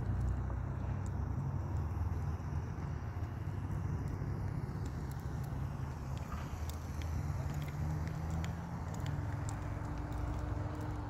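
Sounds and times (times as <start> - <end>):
faint clicks: 4.8 - 11.0.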